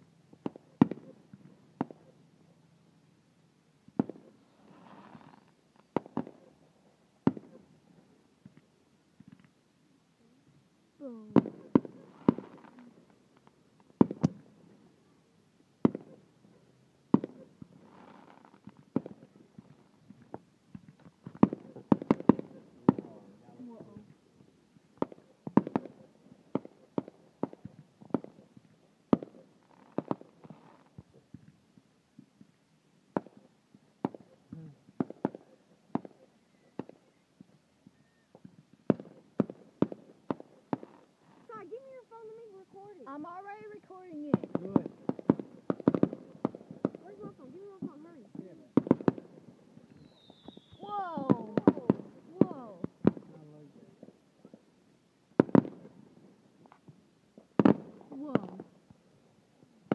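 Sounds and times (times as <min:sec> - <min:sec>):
fireworks bangs: 0:00.4 - 0:02.1, 0:03.9 - 0:06.6, 0:07.2 - 0:07.7, 0:11.0 - 0:13.1, 0:13.8 - 0:14.8, 0:15.8 - 0:16.2, 0:17.1 - 0:24.2, 0:25.0 - 0:31.6, 0:33.1 - 0:37.2, 0:37.8 - 0:54.7, 0:55.4 - 0:59.0.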